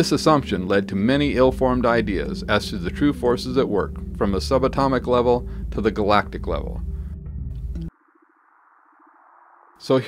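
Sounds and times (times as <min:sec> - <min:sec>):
man narrating: 0:00.0 - 0:06.8, 0:09.8 - 0:10.0.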